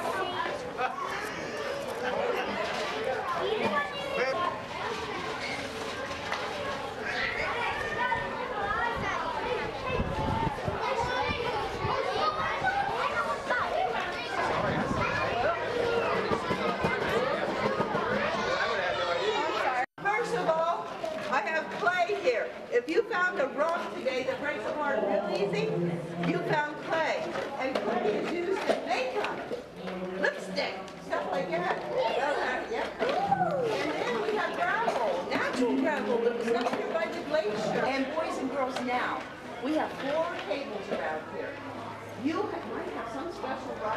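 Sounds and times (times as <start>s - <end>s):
children chattering and calling out: 0.0s - 43.9s.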